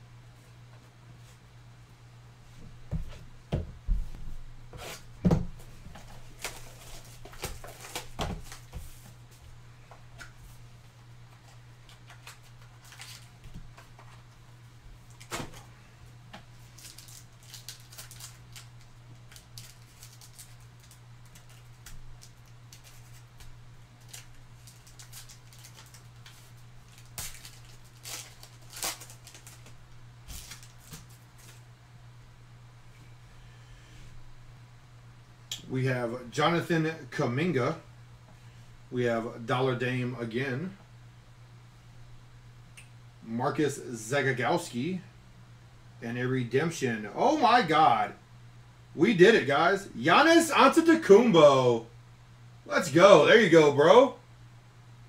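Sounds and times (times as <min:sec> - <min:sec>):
steady low hum: 0:00.0 - 0:55.0
card wrapper crinkling: 0:06.2 - 0:08.6, 0:11.3 - 0:14.2, 0:16.6 - 0:31.6.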